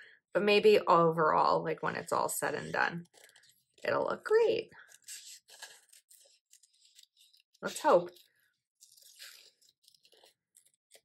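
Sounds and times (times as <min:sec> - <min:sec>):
scissors snipping paper: 0:04.8 - 0:11.0.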